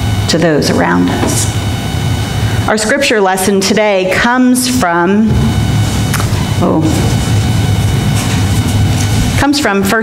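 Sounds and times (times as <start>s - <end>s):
loud low rumble: 4.5s - 9.7s.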